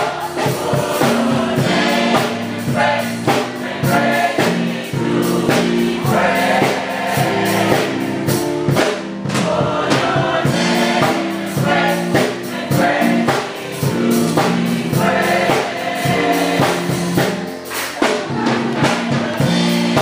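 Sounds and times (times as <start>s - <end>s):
drum kit beat: 0.0s - 20.0s
gospel choir singing in harmony: 0.0s - 20.0s
keyboard: 0.0s - 20.0s.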